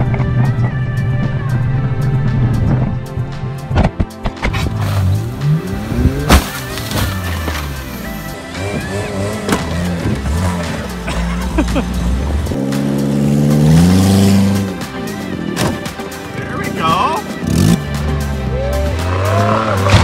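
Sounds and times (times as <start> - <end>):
background music: 0.0 - 20.0
car engine revving: 4.5 - 16.3, 17.2 - 20.0
car crash impact: 6.2 - 7.8.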